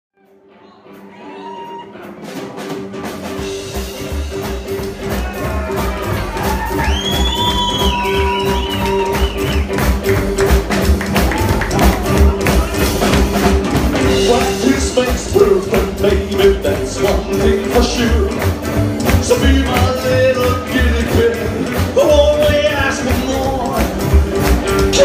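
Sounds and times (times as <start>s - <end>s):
rockabilly band playing: 0.2s - 25.0s.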